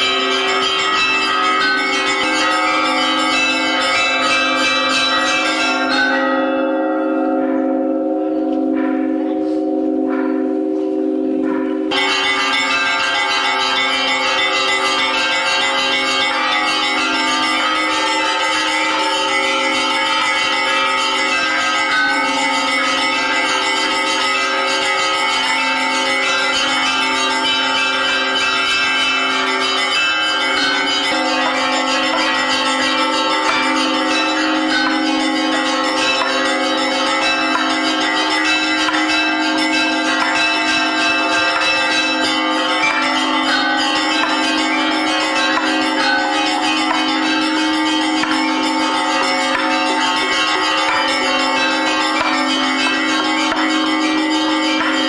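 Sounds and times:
church bells pealing: 0:00.0 - 0:55.0.

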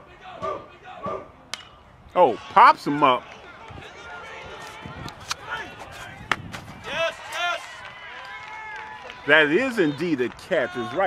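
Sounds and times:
ball smacking into glove: 0:05.2 - 0:06.8.

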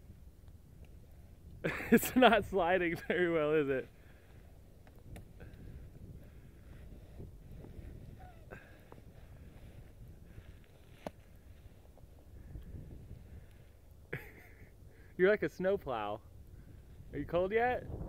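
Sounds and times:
snow crunching and rustling: 0:00.0 - 0:18.0.

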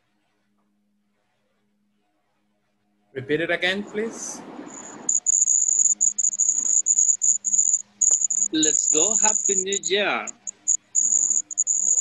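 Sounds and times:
cricket chirping: 0:04.7 - 0:12.0
person speaking: 0:08.5 - 0:10.4.

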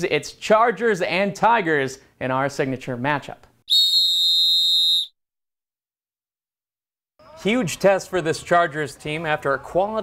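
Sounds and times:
high whistle-like tone: 0:03.7 - 0:05.2.

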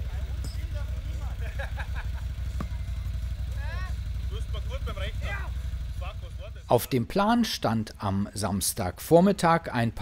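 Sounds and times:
quad engine idling: 0:00.0 - 0:07.6.

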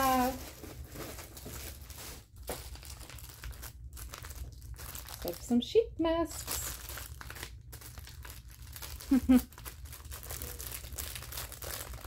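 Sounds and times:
packaging crinkling and rustling: 0:00.0 - 0:05.6, 0:06.3 - 0:12.0.

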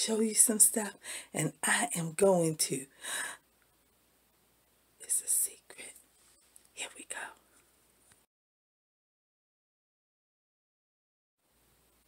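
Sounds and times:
woman whispering: 0:05.0 - 0:06.0, 0:06.7 - 0:07.5.

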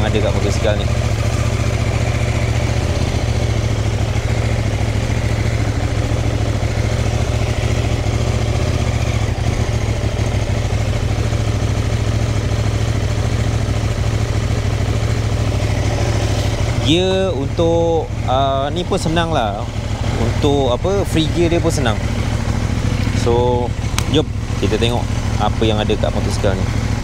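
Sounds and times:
motorcycle engine running: 0:00.0 - 0:27.0.

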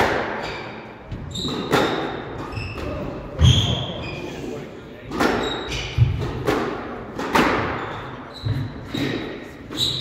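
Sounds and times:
shoes squeaking on wooden floor: 0:07.8 - 0:10.0.

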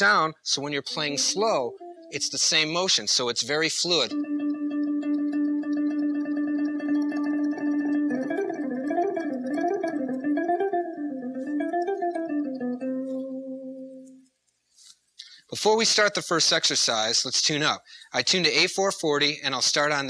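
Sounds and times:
electric guitar tremolo picking: 0:00.0 - 0:14.2.

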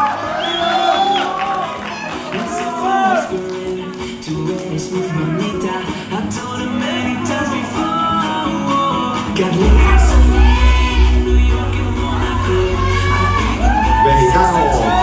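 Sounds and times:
song with singing: 0:02.1 - 0:15.0
heavy pulsing bass beat: 0:09.4 - 0:15.0.

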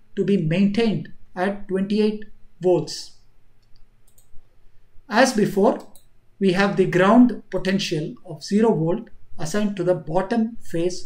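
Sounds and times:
computer mouse clicks: 0:03.6 - 0:04.5, 0:05.7 - 0:06.2.

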